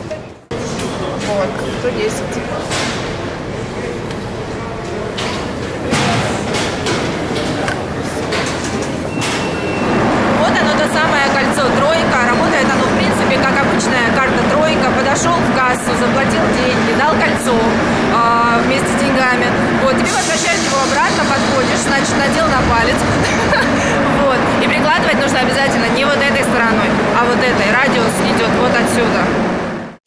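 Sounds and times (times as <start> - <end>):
speech echoing in a hall: 0.0 - 29.6
station background noise: 0.0 - 30.0.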